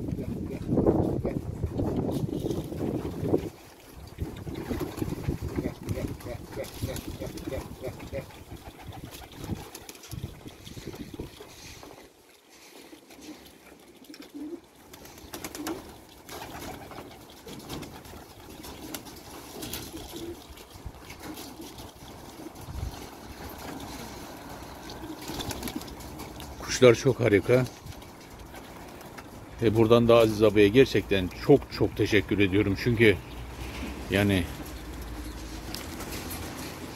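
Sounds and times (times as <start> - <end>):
pigeons cooing: 0.0 - 2.2, 4.0 - 26.6
wings fluttering: 0.0 - 12.1, 12.8 - 26.7, 27.5 - 29.6, 33.6 - 36.9.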